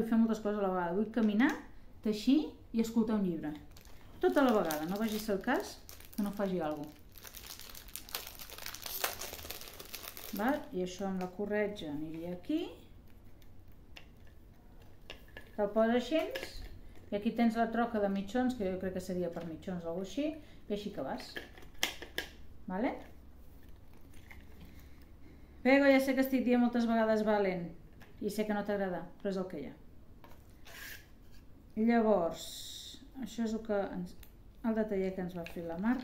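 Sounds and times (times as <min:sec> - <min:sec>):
packaging crinkling: 0:03.6 - 0:11.3.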